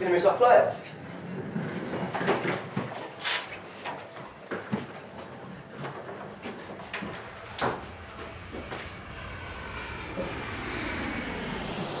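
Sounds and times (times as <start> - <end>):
faint high engine whine: 0.0 - 12.0
jet engine roar: 4.9 - 12.0.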